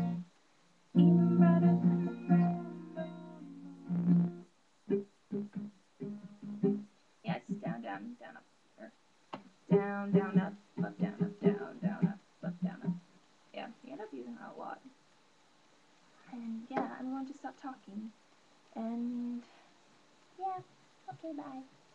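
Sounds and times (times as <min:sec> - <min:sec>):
acoustic guitar strumming: 0:00.0 - 0:00.3, 0:01.0 - 0:07.8, 0:09.7 - 0:13.0.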